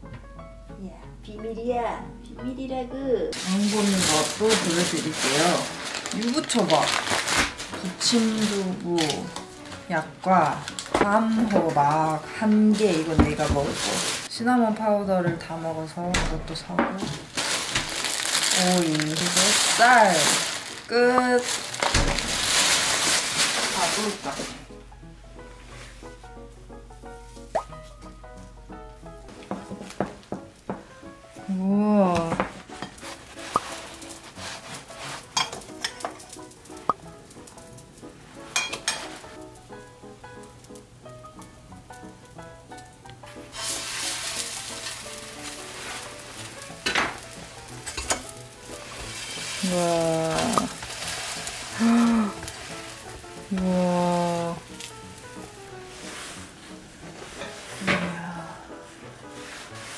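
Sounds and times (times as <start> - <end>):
background music with gliding notes: 0.0 - 59.9
pancakes sizzling in a pan: 17.4 - 24.7, 32.5 - 59.9.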